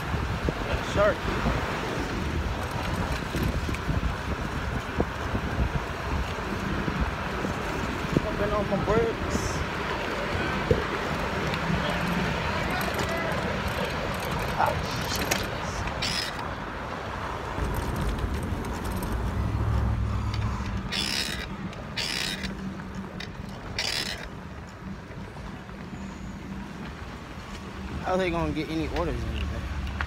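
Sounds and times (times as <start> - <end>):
wind on microphone: 0.0 - 16.8
bike tyre noise: 0.0 - 30.0.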